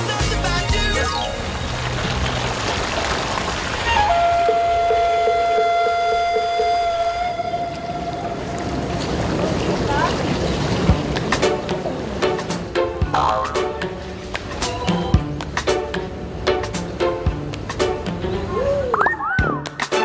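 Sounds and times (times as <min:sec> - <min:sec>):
fountain water splashing: 0:00.8 - 0:14.9
long held note with overtones: 0:03.9 - 0:08.8.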